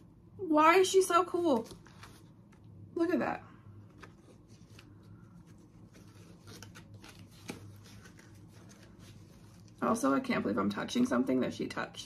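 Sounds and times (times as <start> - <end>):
packaging rustling and crinkling: 3.9 - 9.8.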